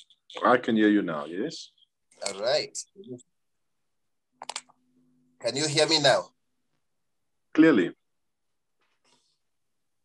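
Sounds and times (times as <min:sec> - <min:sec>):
sharp clicks: 0:04.4 - 0:04.8.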